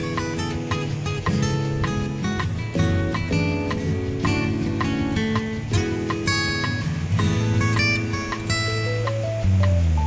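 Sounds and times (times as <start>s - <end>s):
plucked string instrument music: 0.0s - 10.0s.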